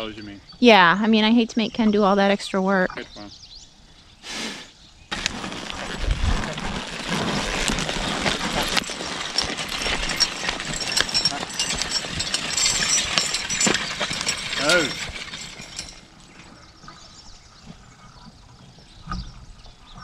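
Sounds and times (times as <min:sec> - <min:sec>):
harrow tines scraping stony soil: 0:05.1 - 0:16.3.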